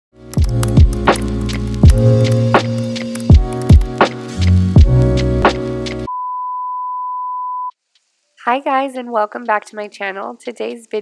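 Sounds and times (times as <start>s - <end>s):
steady test tone beep: 6.1s - 7.7s.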